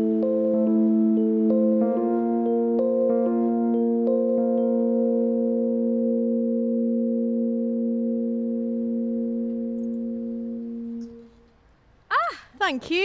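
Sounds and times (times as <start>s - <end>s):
sustained keyboard chord: 0.0s - 11.7s.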